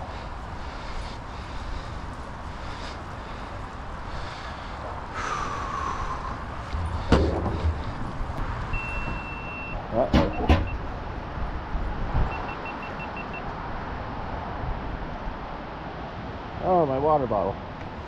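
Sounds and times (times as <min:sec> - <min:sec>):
steady wind-like noise: 0:00.0 - 0:18.0
electronic beeping: 0:08.8 - 0:10.8.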